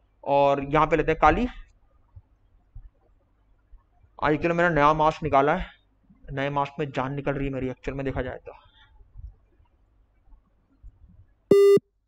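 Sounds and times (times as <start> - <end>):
loud buzzy electronic beep: 11.5 - 11.8.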